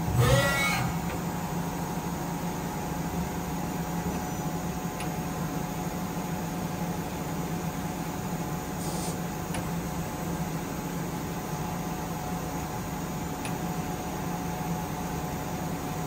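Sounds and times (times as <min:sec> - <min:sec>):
tool turret rising whine: 0:00.0 - 0:01.8
lathe machine hum: 0:00.0 - 0:02.4.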